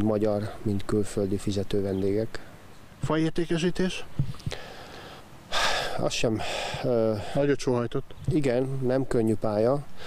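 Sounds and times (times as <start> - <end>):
man speaking: 0.0 - 4.1, 5.6 - 9.9
man's sharp intake of breath: 4.4 - 7.4.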